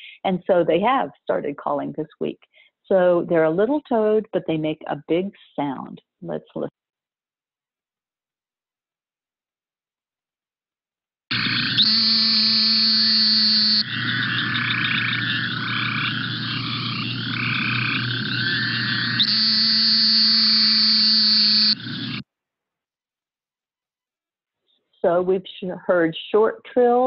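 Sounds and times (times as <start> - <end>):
chorus of toad calls: 11.3 - 22.2
toad long nasal buzzes: 11.3 - 22.2.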